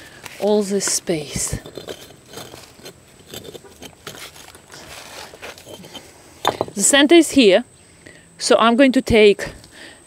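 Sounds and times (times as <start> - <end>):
bricks scraping and knocking: 0.4 - 6.9.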